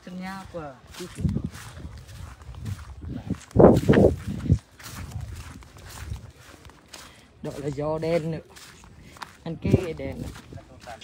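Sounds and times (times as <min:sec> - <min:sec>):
footsteps on grass: 0:00.0 - 0:11.0.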